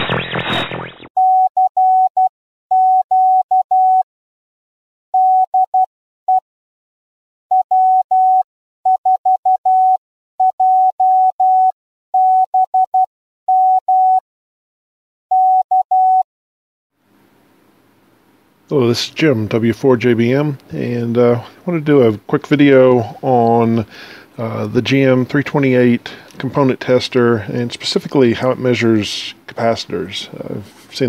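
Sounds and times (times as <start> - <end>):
morse code beeps: 1.2 - 4.0, 5.2 - 5.6, 7.5 - 14.2, 15.3 - 16.2.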